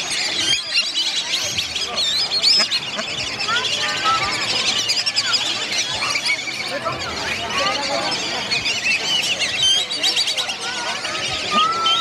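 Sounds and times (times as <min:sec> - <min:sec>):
chorus of many birds calling: 0:00.0 - 0:12.0.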